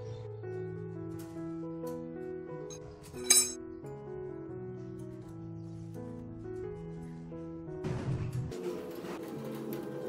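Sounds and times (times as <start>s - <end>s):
metal hook clinking on rebar: 3.1s - 3.6s.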